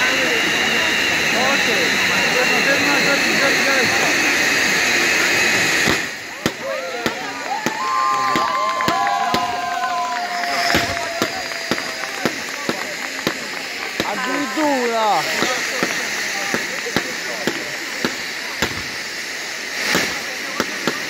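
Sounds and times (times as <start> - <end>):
people calling and shouting: 0.0 - 21.0
spark fountains hissing: 0.0 - 21.0
fireworks cracks and pops: 5.8 - 21.0.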